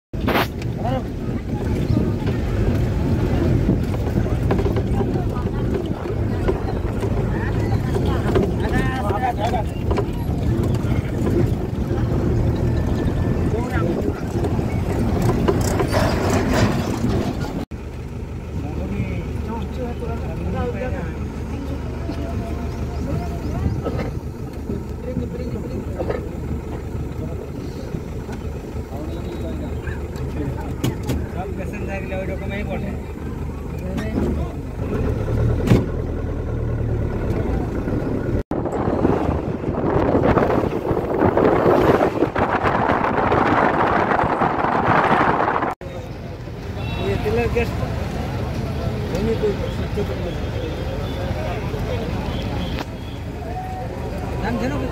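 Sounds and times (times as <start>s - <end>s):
vehicle road and wind noise: 0.1s - 54.9s.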